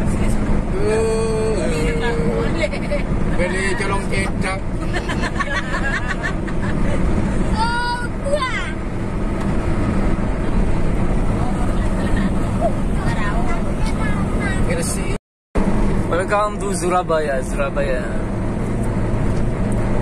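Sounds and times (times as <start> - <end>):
car road and engine noise: 0.0 - 20.0
person speaking: 0.8 - 2.8.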